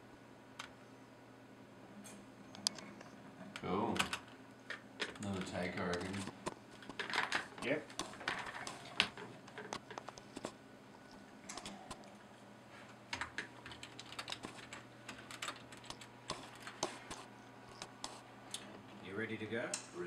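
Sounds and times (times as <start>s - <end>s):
low steady hum: 0.0s - 20.0s
computer keyboard typing: 3.6s - 10.6s, 13.1s - 18.2s.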